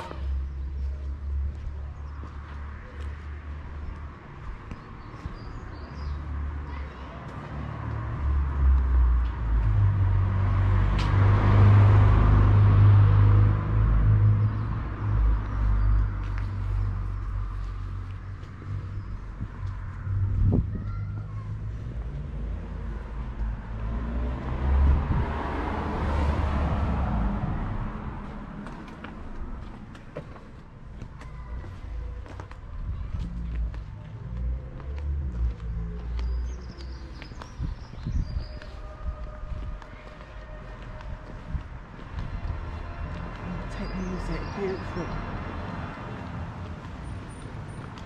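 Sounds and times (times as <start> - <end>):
light footsteps on pavement: 0.0 - 48.0
vehicle passing: 0.0 - 48.0.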